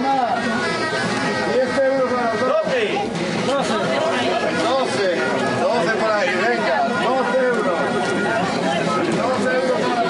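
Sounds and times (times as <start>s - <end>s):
crowd chatter: 0.0s - 10.0s
voices talking loudly: 0.0s - 10.0s.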